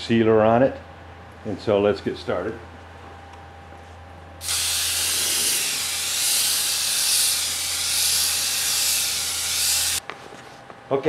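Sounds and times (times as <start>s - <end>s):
sprayer hissing: 4.4s - 10.0s.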